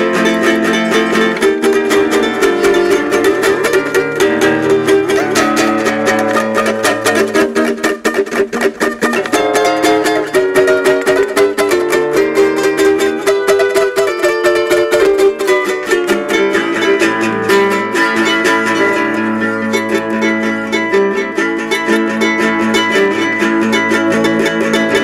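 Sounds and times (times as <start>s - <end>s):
nylon-string guitar fingerpicked: 0.0s - 25.0s.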